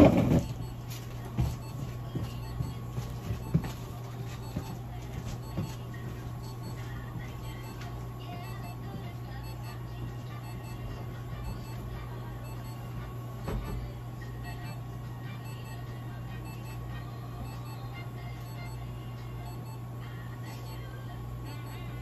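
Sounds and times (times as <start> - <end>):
faint background music: 0.0 - 22.0
steady low hum: 0.0 - 22.0.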